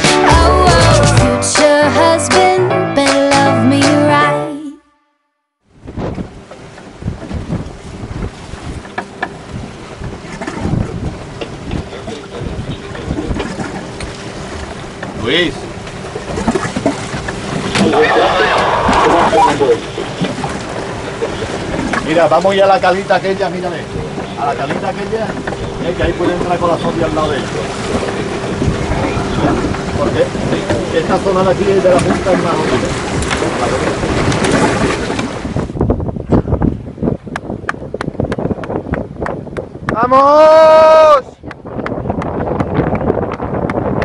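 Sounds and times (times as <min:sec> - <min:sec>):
faint boat engine hum: 0:05.6 - 0:44.0
choppy water sloshing: 0:05.7 - 0:40.1, 0:41.3 - 0:44.0
wind buffeting microphone: 0:05.7 - 0:44.0.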